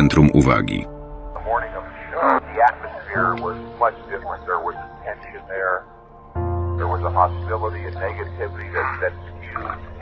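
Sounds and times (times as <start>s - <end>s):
muffled speech: 0.0s - 0.8s, 1.4s - 5.9s, 6.8s - 10.0s
background music: 0.0s - 10.0s.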